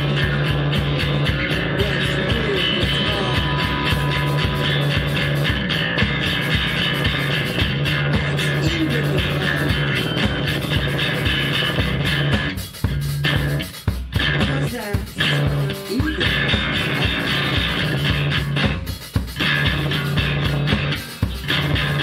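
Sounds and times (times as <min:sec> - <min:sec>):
held low bass notes: 0:00.0 - 0:22.0
live band jamming: 0:00.0 - 0:22.0.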